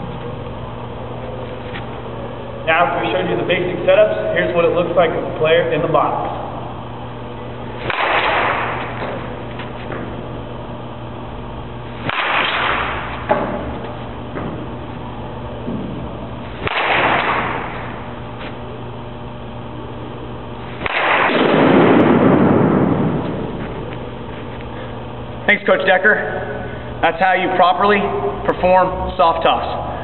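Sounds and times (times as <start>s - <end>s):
baseball bat cracking ball: 7.7s - 10.4s, 11.9s - 15.0s, 15.7s - 18.2s, 20.6s - 23.8s.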